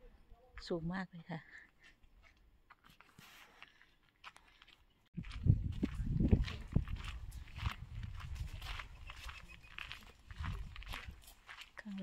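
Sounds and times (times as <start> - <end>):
footsteps on grass: 1.9 - 12.0
wind rumble on microphone: 5.2 - 11.2.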